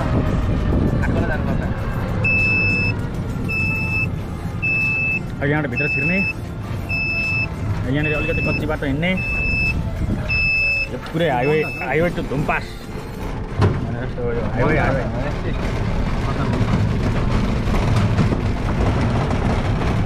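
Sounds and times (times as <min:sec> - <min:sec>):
low engine rumble: 0:00.0 - 0:20.0
vehicle warning beeper: 0:02.2 - 0:12.2.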